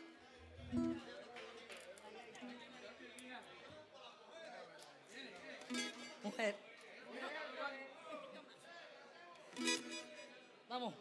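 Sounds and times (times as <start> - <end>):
faint plucked string music: 0.0 - 1.2, 5.7 - 6.2, 9.6 - 10.3.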